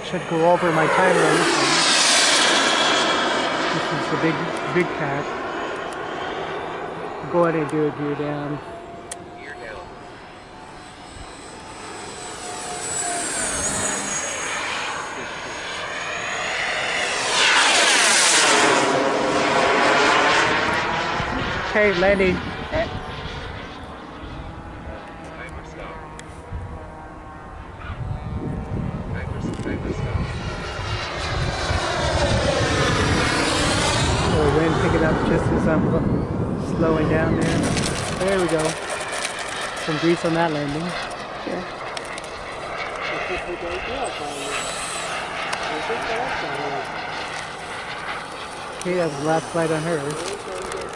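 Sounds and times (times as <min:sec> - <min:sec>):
distant jet fan whine: 0:00.0 - 0:50.9.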